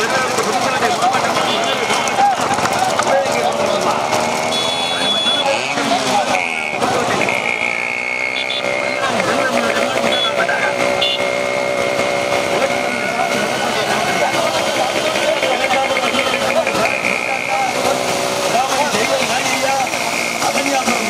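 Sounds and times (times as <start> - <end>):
men shouting and calling: 0.0 - 21.0.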